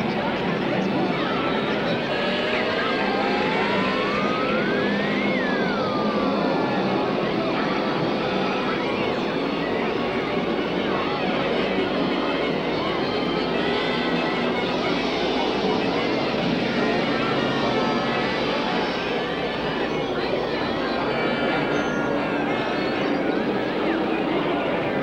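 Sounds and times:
overlapping cartoon voices and music: 0:00.0 - 0:25.0
whistle-like gliding tone: 0:01.2 - 0:25.0.

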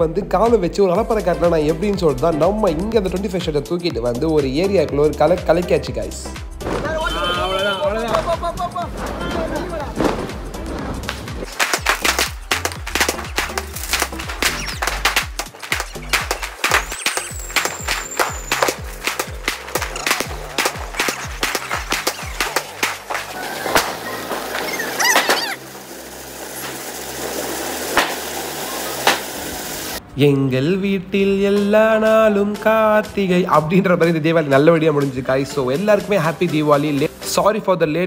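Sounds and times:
background music with bass: 0:00.0 - 0:26.8, 0:30.0 - 0:38.0
fireworks banging and crackling: 0:06.6 - 0:07.1, 0:08.0 - 0:30.0
firework whistle: 0:11.6 - 0:30.0.

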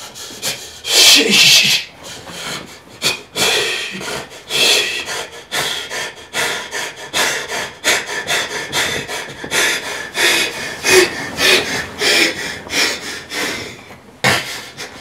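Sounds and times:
person breathing hard and fast: 0:00.0 - 0:15.0.

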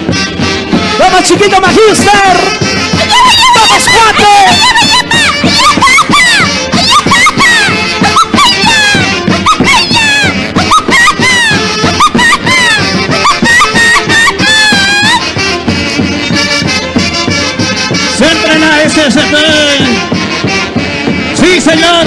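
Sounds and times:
regular drum beat: 0:00.0 - 0:22.0
saxophone-led wind section melody: 0:00.0 - 0:22.0.

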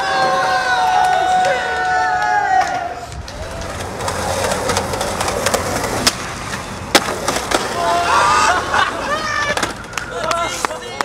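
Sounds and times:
skateboard wheels rolling on pavement: 0:00.0 - 0:11.0
skateboard clacking on ground: 0:00.1 - 0:08.0, 0:09.3 - 0:11.0.

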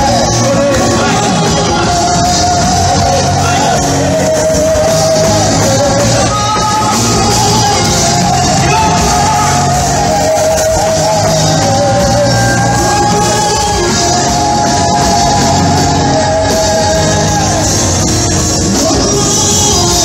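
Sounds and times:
band playing worship music: 0:00.0 - 0:20.0
singers holding long notes: 0:00.0 - 0:20.0.

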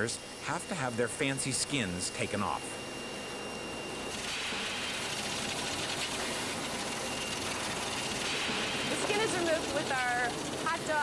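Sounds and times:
machinery running: 0:00.0 - 0:11.0.

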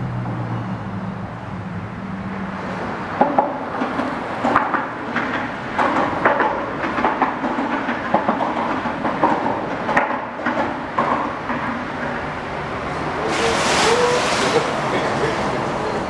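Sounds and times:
traffic rumble on bridge: 0:00.0 - 0:16.0
clattering knocks: 0:03.2 - 0:12.3.

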